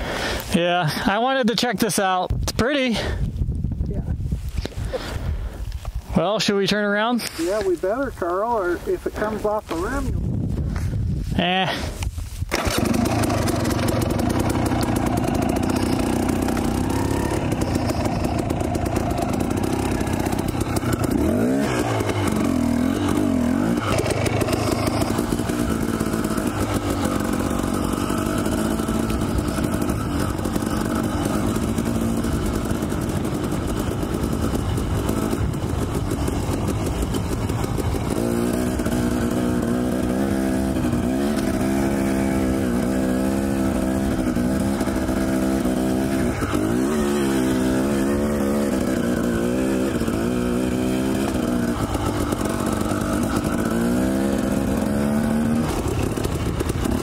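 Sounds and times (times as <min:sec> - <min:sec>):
dirt bike engine revving: 0:12.5 - 0:57.0.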